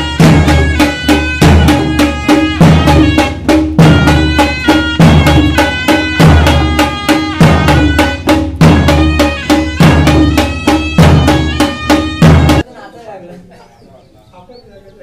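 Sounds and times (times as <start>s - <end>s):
barrel drums beating fast rhythm: 0.0s - 12.6s
pitched melody line: 0.0s - 12.6s.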